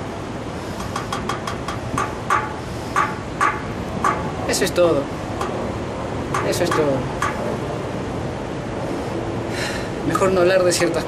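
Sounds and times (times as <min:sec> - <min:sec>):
distant traffic: 0:00.0 - 0:11.0.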